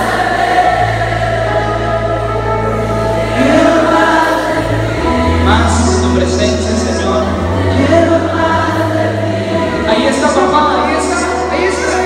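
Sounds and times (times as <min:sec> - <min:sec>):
held keyboard chords: 0:00.0 - 0:12.0
live band music with singing: 0:00.0 - 0:12.0.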